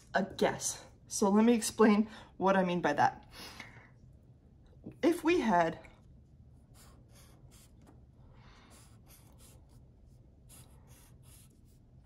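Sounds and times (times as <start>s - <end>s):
marker drawing on paper: 6.6s - 12.0s.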